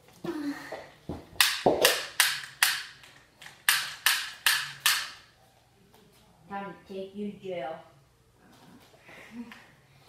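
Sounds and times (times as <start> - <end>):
sharp cracks in small room: 1.3 - 5.4.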